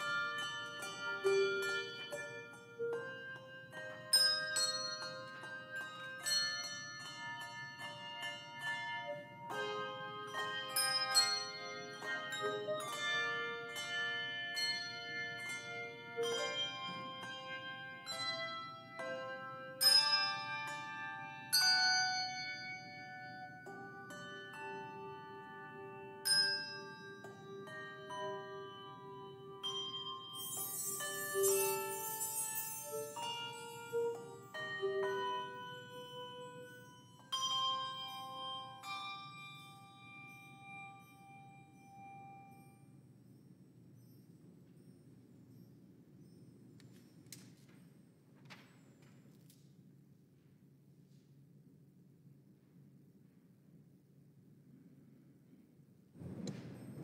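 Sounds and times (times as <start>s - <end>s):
handbell choir playing: 0.0s - 46.4s.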